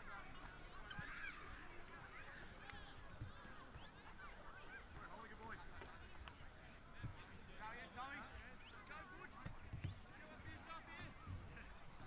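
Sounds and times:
low field hubbub: 0.0 - 12.0.

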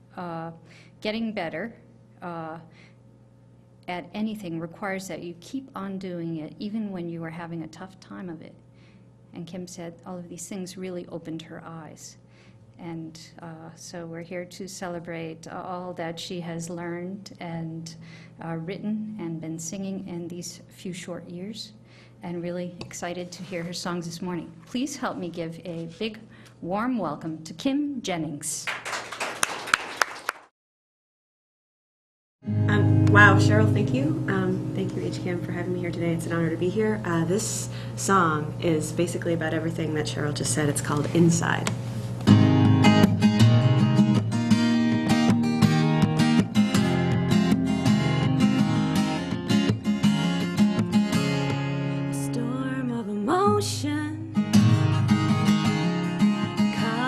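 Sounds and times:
applause: 28.6 - 30.5
acoustic guitar strumming: 32.4 - 36.6, 42.2 - 57.0
woman singing: 52.1 - 54.4, 56.7 - 57.0.

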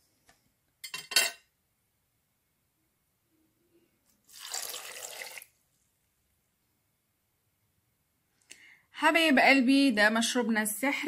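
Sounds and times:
juice pouring into a glass: 4.2 - 5.6.

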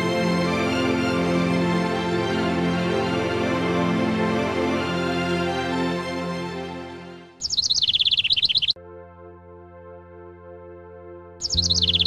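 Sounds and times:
held music chord: 0.0 - 7.4, 8.8 - 12.0
music: 0.0 - 8.1, 8.7 - 12.0
bird chirping rapidly: 7.4 - 8.8, 11.4 - 12.0.

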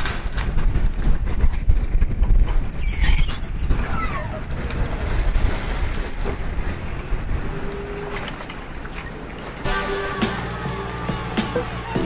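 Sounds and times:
boat engine rumbling: 2.0 - 12.0.

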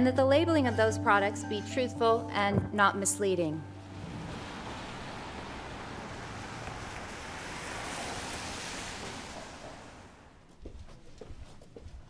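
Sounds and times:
tyres hissing on wet road: 3.8 - 10.4.

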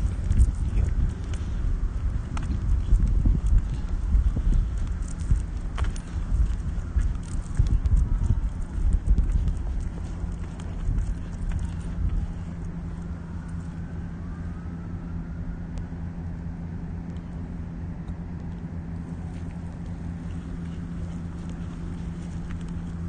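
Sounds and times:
footsteps on concrete: 0.0 - 13.6, 19.1 - 23.0
steady low hum: 0.0 - 23.0.

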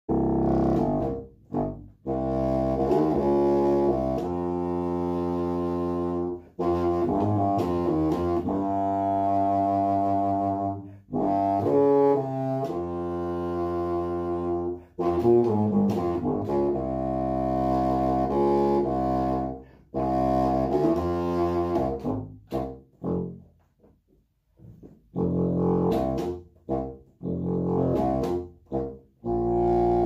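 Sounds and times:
contrabassoon playing low notes: 0.1 - 23.8, 24.6 - 30.0.

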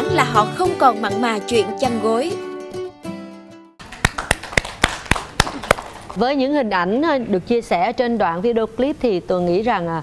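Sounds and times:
background music: 0.0 - 4.2
group clapping: 3.8 - 6.2.

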